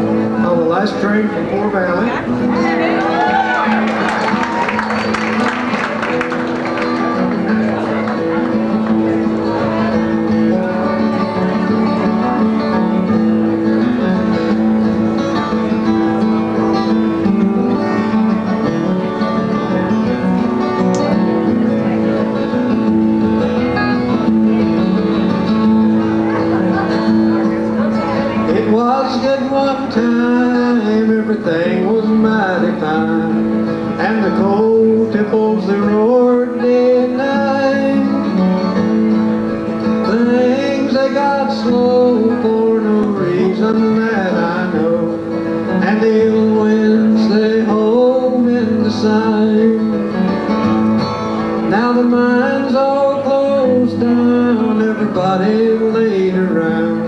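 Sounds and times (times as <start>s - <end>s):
acoustic guitars flatpicking: 0.0s - 57.0s.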